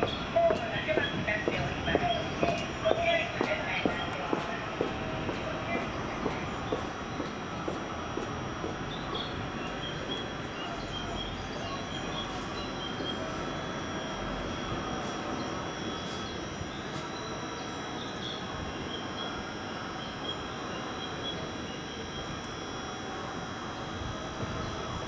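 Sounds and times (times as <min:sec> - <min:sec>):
electric train humming: 0:00.0 - 0:25.0
faint high whine: 0:00.0 - 0:25.0.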